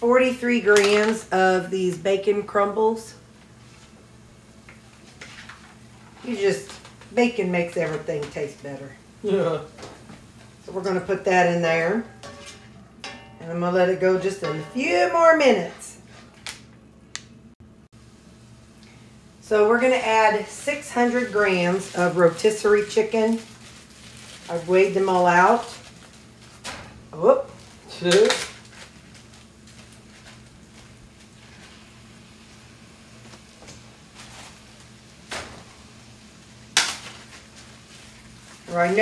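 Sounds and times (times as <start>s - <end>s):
steady low hum: 1.3s - 28.0s
food sizzling in a skillet: 19.1s - 26.4s, 29.6s - 39.0s.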